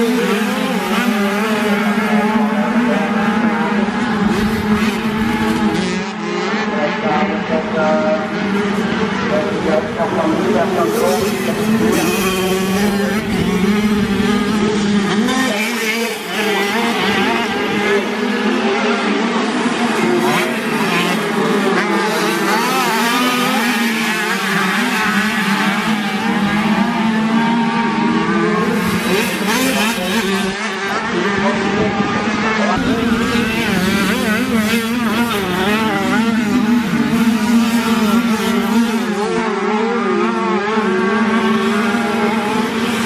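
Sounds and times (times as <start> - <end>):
motocross bikes revving: 0.0 - 43.0.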